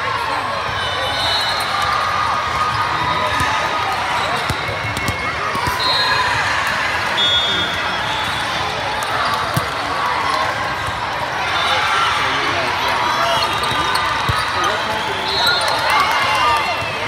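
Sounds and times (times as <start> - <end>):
many voices chattering: 0.0 - 17.0
volleyballs hit and bouncing: 2.4 - 5.8, 8.9 - 11.4, 13.2 - 14.8.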